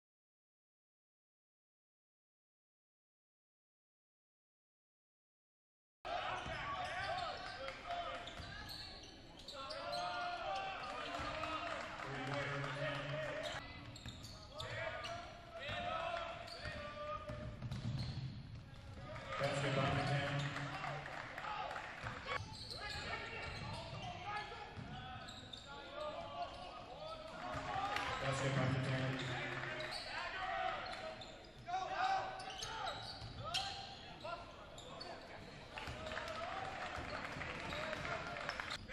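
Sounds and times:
voices in gym: 0:06.1 - 0:17.4, 0:18.6 - 0:38.9
sneaker squeaks: 0:06.2 - 0:11.4, 0:13.3 - 0:15.8, 0:16.4 - 0:18.8, 0:19.4 - 0:21.0, 0:22.3 - 0:36.2
basketball bouncing on court: 0:15.7 - 0:20.7.

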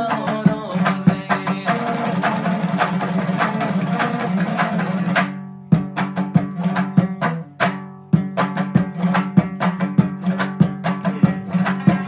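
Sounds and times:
lute strummed rhythmically: 0:00.0 - 0:12.0.

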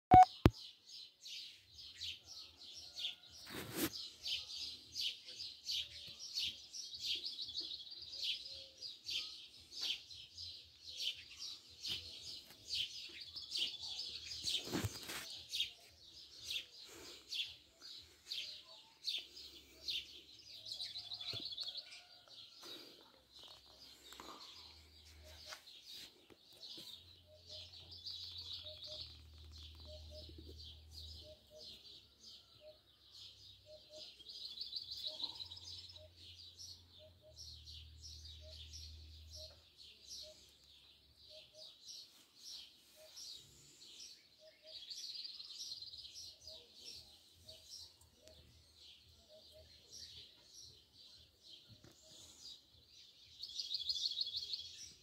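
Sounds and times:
small birds chirping: 0:00.1 - 0:55.0.

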